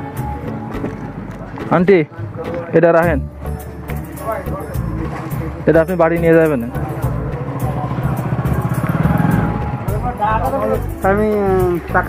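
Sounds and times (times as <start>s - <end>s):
small motorcycle engine passing by: 7.2s - 10.0s.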